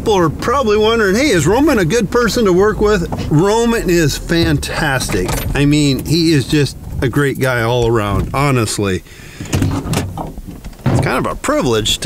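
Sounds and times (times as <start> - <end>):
low rumble: 0.3 - 8.8.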